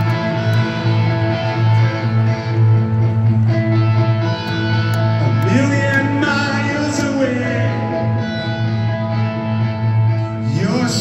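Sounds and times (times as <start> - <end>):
electric guitars ringing chords: 0.0 - 11.0.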